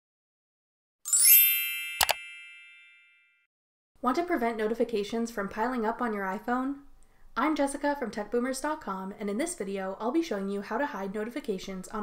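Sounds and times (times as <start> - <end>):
upward sweeping chime ding: 1.1 - 3.4
sharp click: 2.0 - 2.2.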